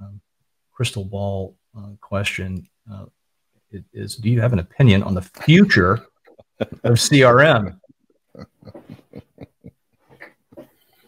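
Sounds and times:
man chuckling quietly: 0:06.2 - 0:10.9.

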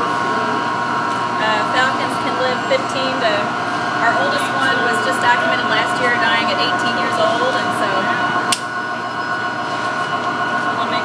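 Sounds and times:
machinery drone: 0:00.0 - 0:11.0.

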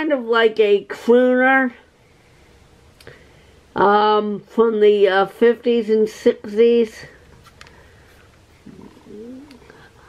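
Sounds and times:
woman's wordless murmur: 0:08.6 - 0:09.7.

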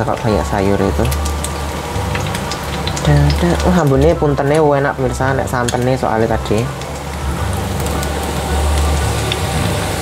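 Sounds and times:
frying hiss with crackling pops: 0:00.0 - 0:10.0.

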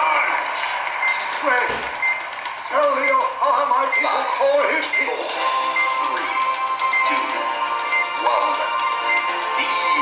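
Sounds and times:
cartoon background music: 0:02.7 - 0:10.0.

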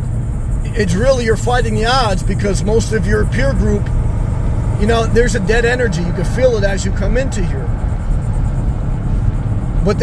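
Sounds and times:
road and engine noise in car: 0:00.0 - 0:10.0.

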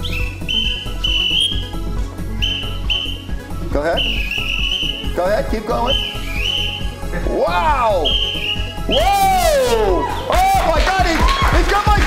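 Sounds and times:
whistle blasts: 0:00.0 - 0:07.1, 0:08.0 - 0:10.4
dance music with steady beat: 0:00.0 - 0:12.0.

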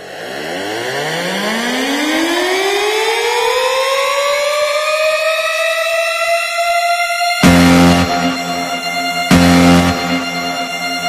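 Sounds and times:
siren-like rising synth tone: 0:06.9 - 0:11.0.

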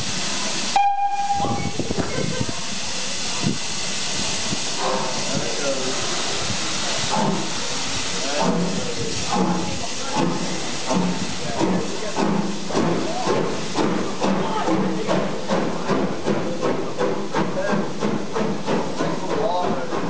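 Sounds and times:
locomotive exhaust beats: 0:00.0 - 0:20.0
steam locomotive hissing: 0:00.0 - 0:20.0.

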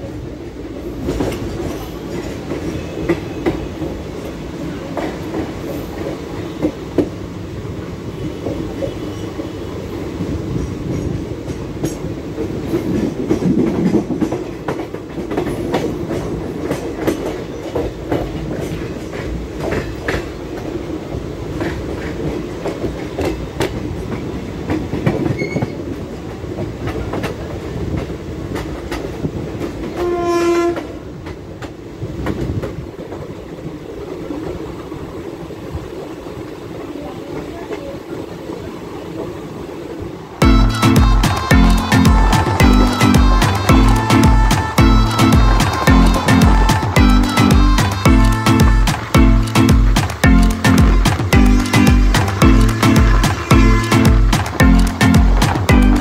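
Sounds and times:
train wheels clicking over rail joints: 0:10.3 - 0:33.5
train horn: 0:30.0 - 0:31.1, 0:52.7 - 0:54.6.

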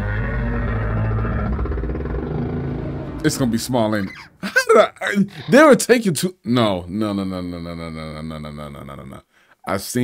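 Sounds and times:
low rumbling drone: 0:00.0 - 0:04.4
dark soundtrack music: 0:00.0 - 0:04.7.

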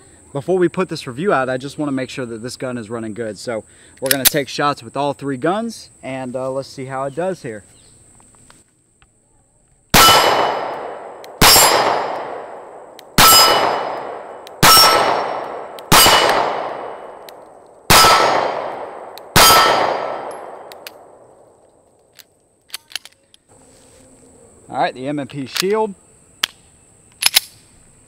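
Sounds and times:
pistol shots: 0:10.0 - 0:21.2.

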